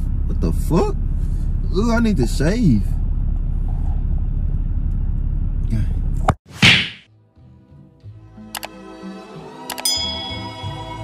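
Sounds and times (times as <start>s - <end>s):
low car cabin rumble: 0.0s - 6.4s.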